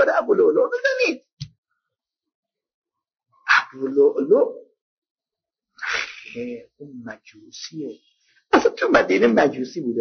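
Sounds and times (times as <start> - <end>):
man speaking: 0.0 - 1.3, 3.7 - 4.8, 5.8 - 10.0.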